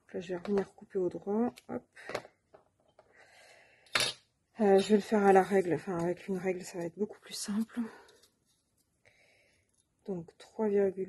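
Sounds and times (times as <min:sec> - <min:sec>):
faint soft rustle: 0:07.2 - 0:10.0.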